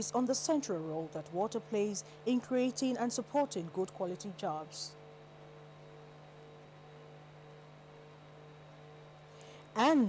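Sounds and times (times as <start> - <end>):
faint electrical hum with hiss: 0.0 - 10.0.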